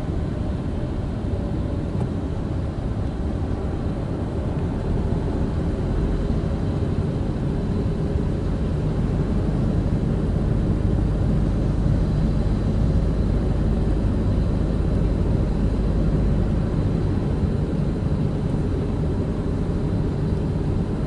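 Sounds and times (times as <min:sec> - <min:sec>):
car cabin engine and tyre rumble: 0:00.0 - 0:21.0.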